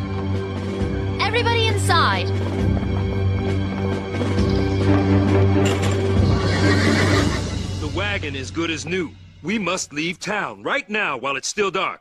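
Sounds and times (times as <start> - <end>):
background music with low notes: 0.0 - 12.0
horse whinnying: 6.0 - 7.7.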